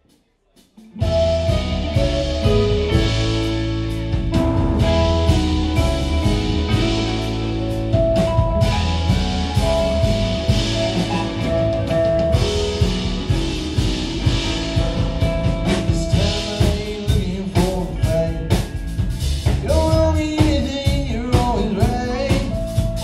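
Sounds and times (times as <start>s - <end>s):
drum kit beat: 0.0s - 23.0s
keyboards: 0.0s - 23.0s
electric guitars: 0.8s - 23.0s.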